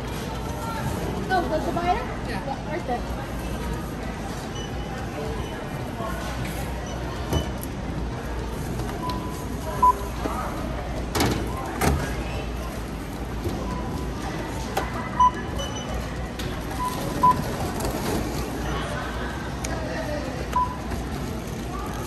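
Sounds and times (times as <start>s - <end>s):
store background: 0.0s - 22.0s
barcode scanner beeping: 9.0s - 10.1s, 15.1s - 16.0s, 16.7s - 17.6s.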